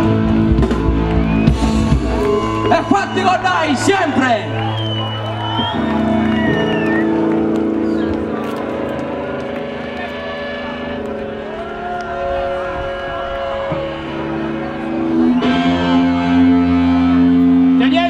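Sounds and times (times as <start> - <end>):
crowd noise: 0.0 - 18.0
electric guitars sustained chords: 0.0 - 18.0.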